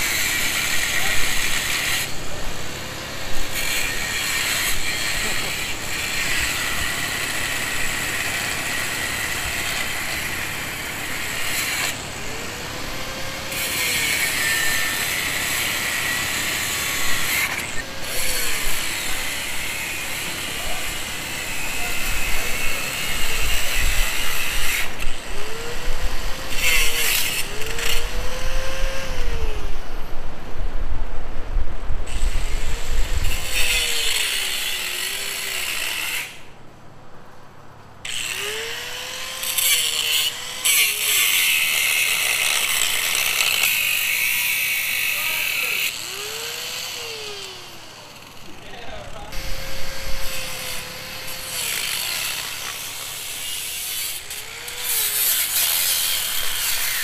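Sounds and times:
angle grinder cutting metal: 0:00.0 - 0:29.8, 0:32.1 - 0:36.5, 0:38.0 - 0:57.0.

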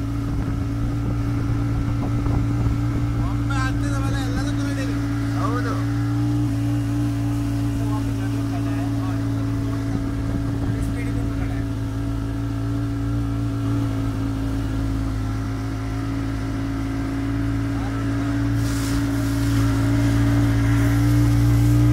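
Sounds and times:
motorboat engine droning: 0:00.0 - 0:21.9
hiss: 0:18.5 - 0:19.9.

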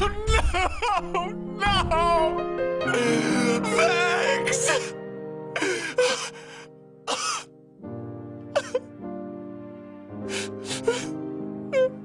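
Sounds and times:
cartoon character sobbing: 0:00.0 - 0:02.2, 0:02.9 - 0:05.0
sad music with sustained chords: 0:00.1 - 0:12.0.

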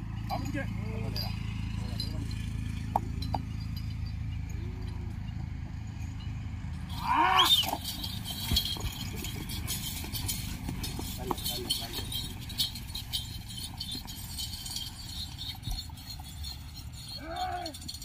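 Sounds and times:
clattering hoofbeats and knocks: 0:00.0 - 0:18.0
man's loud rising call: 0:06.9 - 0:07.8, 0:17.1 - 0:17.9
men shouting: 0:06.9 - 0:07.8, 0:17.0 - 0:18.0.

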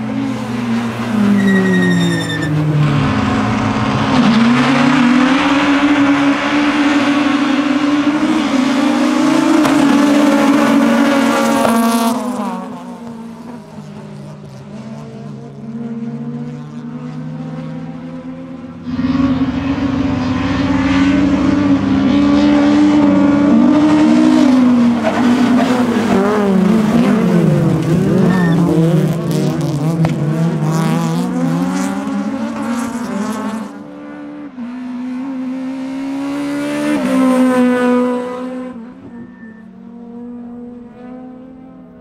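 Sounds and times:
racing car engines revving: 0:00.0 - 0:42.0.

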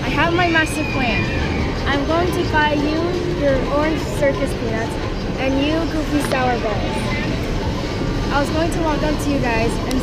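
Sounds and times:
low background noise: 0:00.0 - 0:10.0
child talking: 0:01.9 - 0:07.4.

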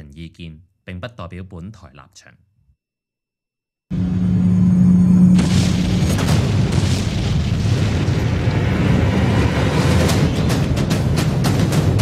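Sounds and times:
dramatic soundtrack: 0:03.9 - 0:12.0
deep boom and rumble: 0:05.3 - 0:12.0.

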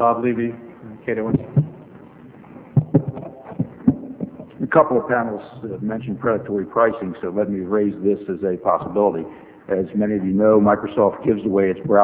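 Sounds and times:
short dull thumps: 0:01.3 - 0:01.9, 0:02.7 - 0:04.6.

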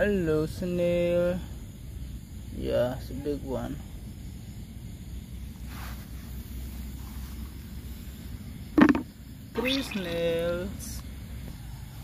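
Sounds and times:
low background rumble: 0:01.5 - 0:12.0
shell knocking in plastic bucket: 0:08.8 - 0:10.0.

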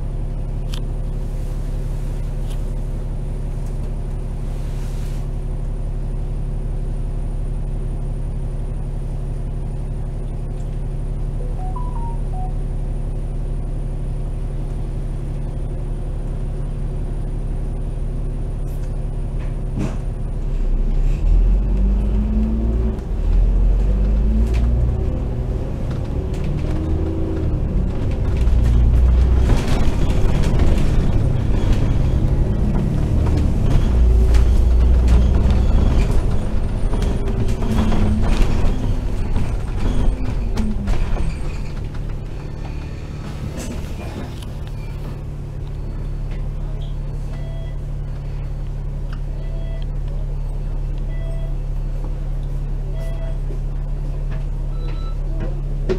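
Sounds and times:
bus engine idling: 0:00.0 - 0:21.2, 0:21.9 - 0:55.9
bus engine accelerating: 0:00.0 - 0:55.9.

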